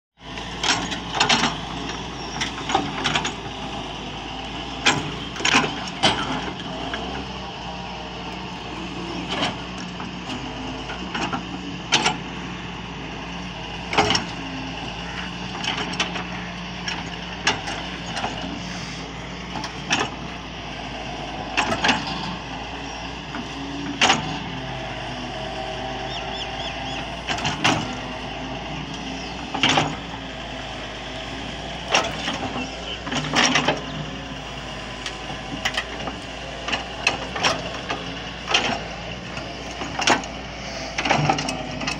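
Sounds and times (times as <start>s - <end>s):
excavator diesel engine running: 0.2s - 41.9s.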